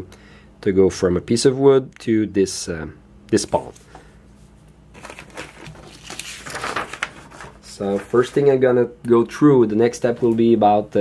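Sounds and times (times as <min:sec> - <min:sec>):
paper rustling and crinkling: 0:04.9 - 0:08.6.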